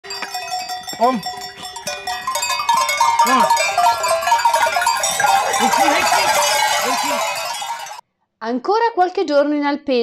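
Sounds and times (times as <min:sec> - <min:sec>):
goat bells jangling: 0:00.0 - 0:08.0.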